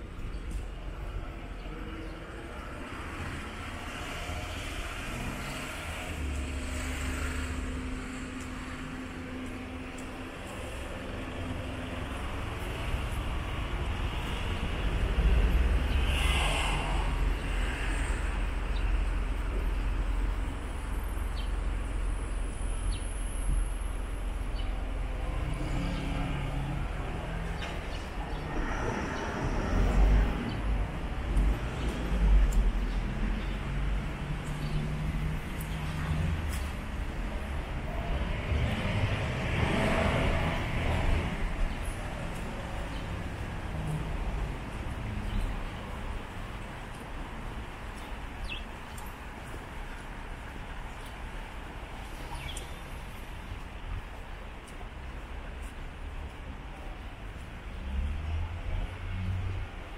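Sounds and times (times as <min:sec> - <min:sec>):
car traffic passing: 0:00.0 - 0:59.9.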